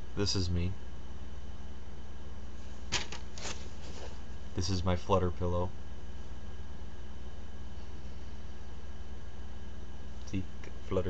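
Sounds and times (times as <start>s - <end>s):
low electrical hum and hiss: 0.0s - 11.0s
pillow rustling: 2.6s - 4.4s.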